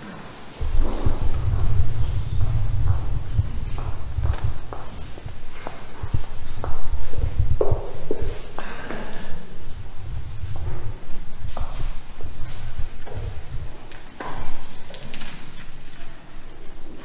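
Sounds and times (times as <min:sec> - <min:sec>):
footsteps on tiled floor: 0:00.6 - 0:17.0.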